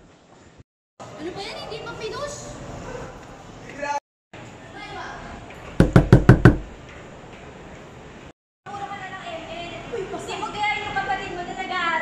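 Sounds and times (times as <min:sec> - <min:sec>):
knuckles knocking on a door: 0:05.8 - 0:06.7.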